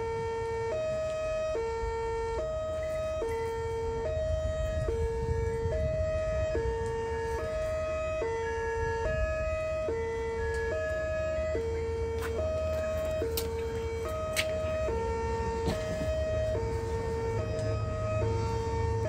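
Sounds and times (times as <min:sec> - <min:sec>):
two-tone siren from loudspeaker: 0:00.0 - 0:19.0.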